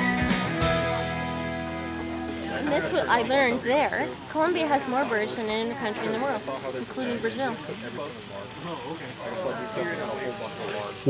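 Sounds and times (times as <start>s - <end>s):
indistinct group conversation: 1.3s - 11.0s.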